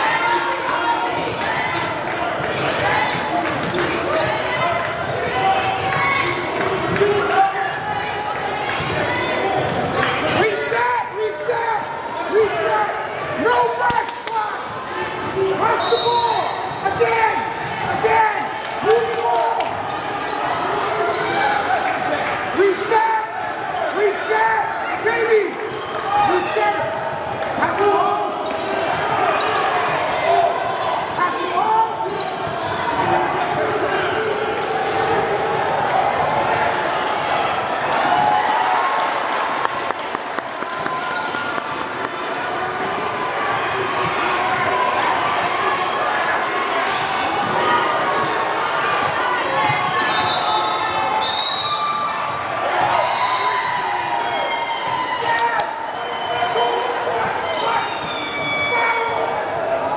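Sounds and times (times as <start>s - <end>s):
echoing crowd voices: 0.0s - 59.9s.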